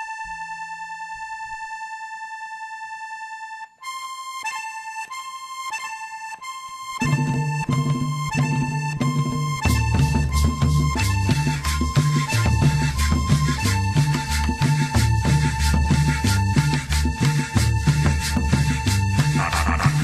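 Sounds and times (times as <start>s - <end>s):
accordion: 0.0s - 20.0s
bass: 6.8s - 20.0s
percussion: 7.0s - 20.0s.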